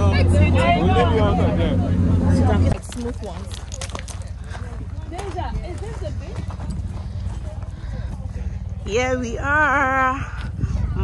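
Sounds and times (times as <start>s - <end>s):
faint chatter of people: 0.0s - 11.0s
steady low rumble: 0.0s - 11.0s
footsteps on gravel: 2.7s - 9.2s.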